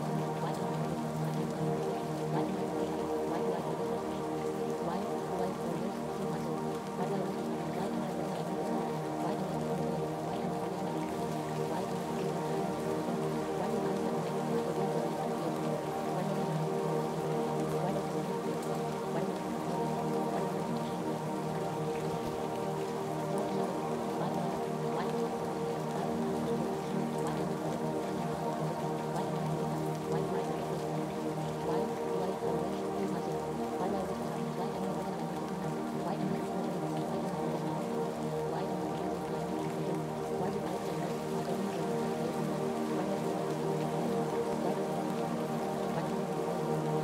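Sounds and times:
ambient music of sustained tones: 0.0s - 47.0s
rain: 0.0s - 47.0s.

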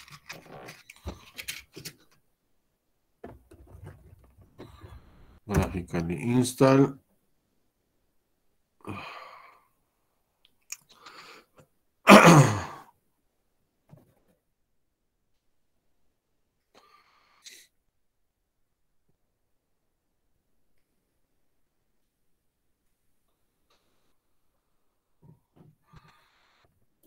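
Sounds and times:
man sighing: 8.8s - 9.6s.

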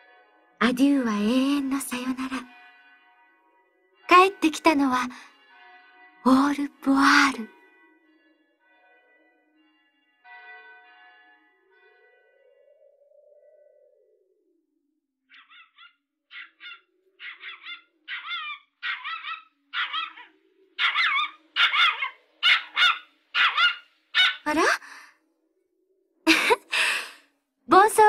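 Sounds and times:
dog whimpering and yipping: 15.4s - 24.5s.

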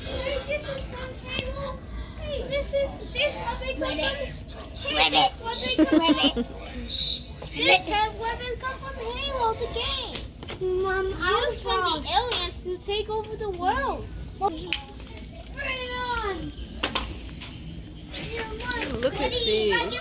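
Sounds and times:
children calling and playing: 0.0s - 20.0s.

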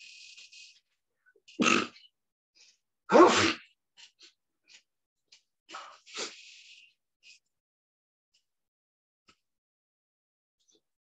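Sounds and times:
person sneezing: 3.1s - 3.6s.

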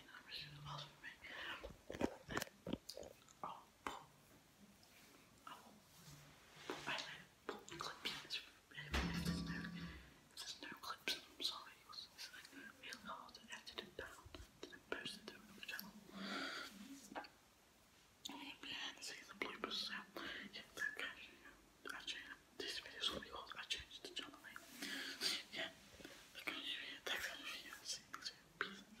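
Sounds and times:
boy whispering: 0.0s - 2.5s, 3.4s - 4.2s, 6.8s - 17.3s, 18.2s - 29.0s.

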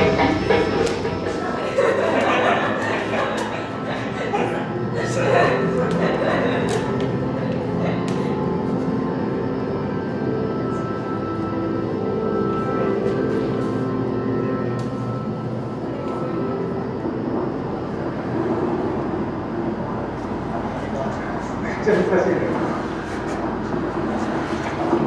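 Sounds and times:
layered droning tones: 0.0s - 25.0s
low hum: 0.0s - 25.0s.

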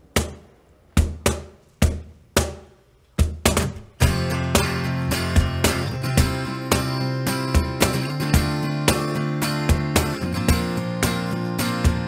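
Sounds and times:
cajon thumps: 0.1s - 7.0s
acoustic guitar strumming chords: 4.0s - 12.0s.

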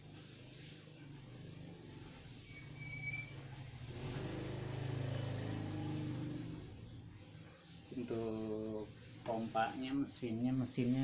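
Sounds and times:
low motor: 0.0s - 9.2s
short high squeak: 2.4s - 3.6s.

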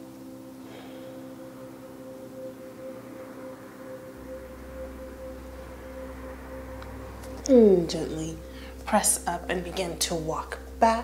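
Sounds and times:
low hum: 0.0s - 11.0s
soft ambient music: 0.0s - 11.0s.

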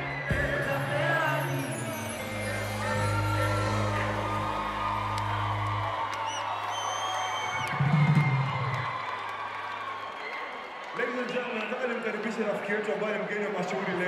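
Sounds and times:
audience whistling: 0.0s - 10.6s
crowd cheering: 0.0s - 14.0s
band holding low bass note: 2.2s - 6.0s.

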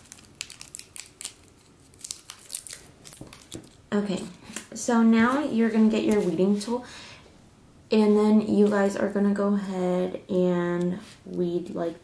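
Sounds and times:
metal foil crackling: 0.0s - 3.8s.

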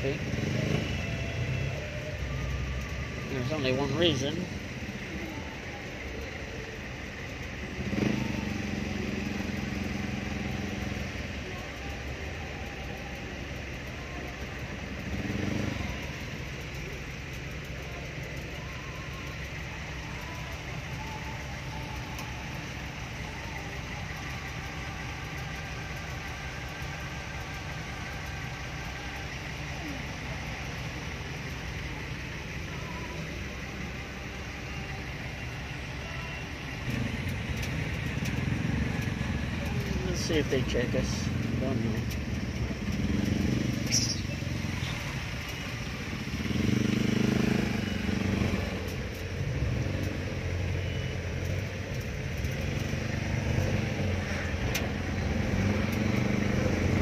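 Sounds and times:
diesel engine running: 0.0s - 57.0s
road and traffic noise: 0.0s - 57.0s.

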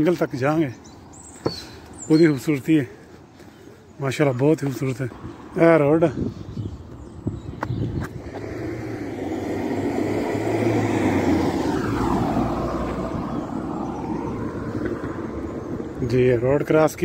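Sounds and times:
car driving past: 8.0s - 16.3s.

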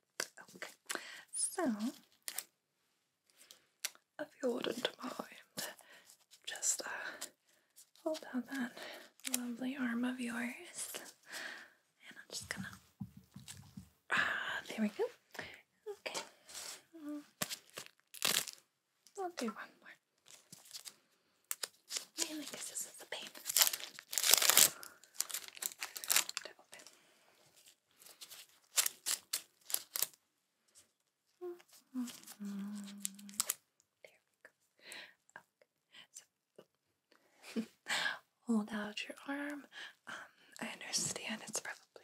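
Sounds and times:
paper wrappers tearing and crinkling: 17.4s - 18.6s, 20.2s - 26.8s, 28.0s - 30.2s, 32.0s - 33.6s.

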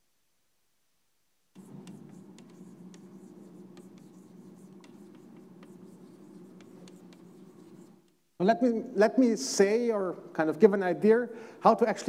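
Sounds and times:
chalk scratching on blackboard: 1.6s - 8.1s.

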